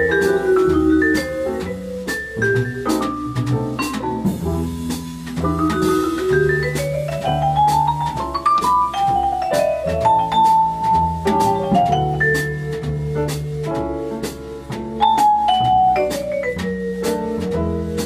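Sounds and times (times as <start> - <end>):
drums: 0.0 - 18.0
jazz vibraphone solo: 0.0 - 18.0
piano: 0.0 - 18.0
upright bass: 0.0 - 18.0.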